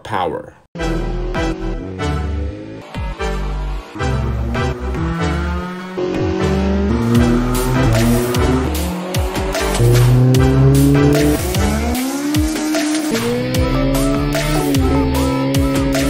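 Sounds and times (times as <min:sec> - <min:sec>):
car engine revving: 0:00.8 - 0:16.0
music: 0:00.8 - 0:16.0.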